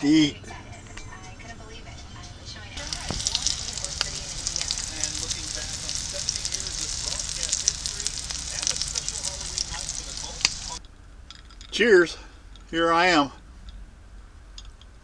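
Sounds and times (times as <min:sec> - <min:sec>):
mushrooms frying in oil: 0:02.8 - 0:10.8.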